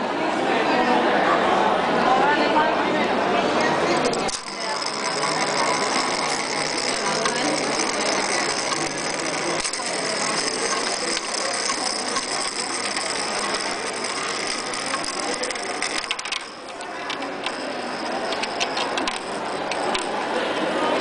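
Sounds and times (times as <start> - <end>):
toy spinning tops whirring and rattling: 3.6 - 21.0.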